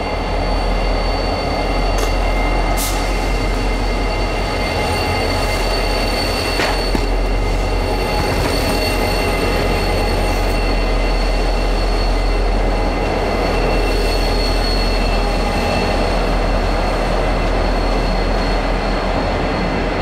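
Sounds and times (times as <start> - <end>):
diesel locomotive engine rumble: 0.0 - 20.0
high-pitched whining tones: 0.0 - 20.0.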